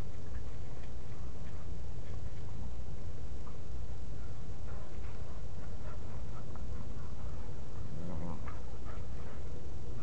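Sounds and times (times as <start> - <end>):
steady low rumble: 0.0 - 10.0
dog growling: 5.8 - 9.3.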